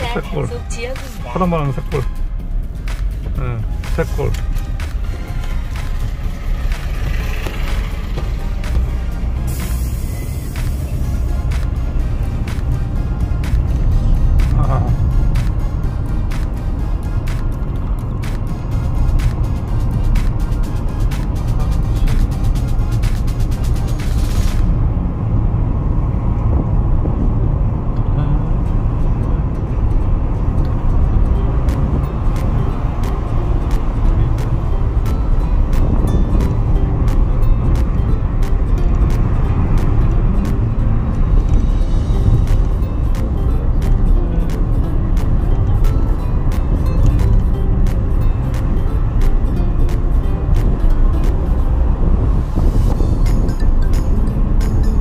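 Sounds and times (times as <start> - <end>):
car road and engine rumble: 0.0 - 55.0
music playing: 0.0 - 55.0.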